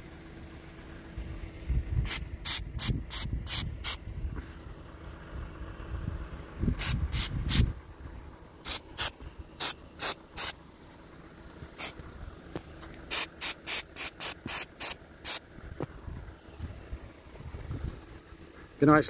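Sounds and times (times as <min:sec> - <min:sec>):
rumbling handling noise: 0:00.7 - 0:18.8
aerosol can spraying: 0:02.0 - 0:04.0, 0:06.8 - 0:07.6, 0:08.6 - 0:10.6, 0:11.8 - 0:12.0, 0:12.8 - 0:15.4.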